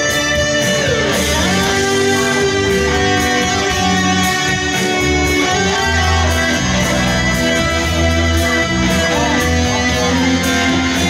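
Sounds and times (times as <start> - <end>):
electric guitar lead notes: 0.0 - 11.0.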